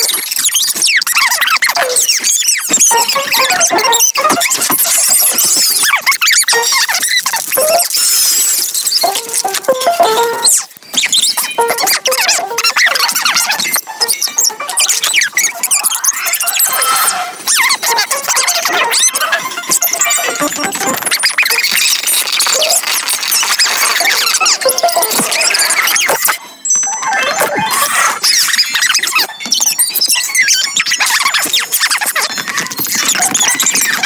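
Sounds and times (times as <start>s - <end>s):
sped-up squeaky cartoon chatter: 0.0s - 34.0s.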